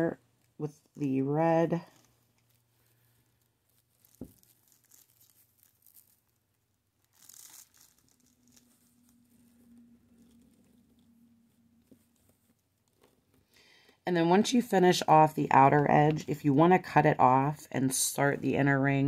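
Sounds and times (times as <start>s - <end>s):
plastic mesh rustling and crinkling: 1.6s - 14.0s.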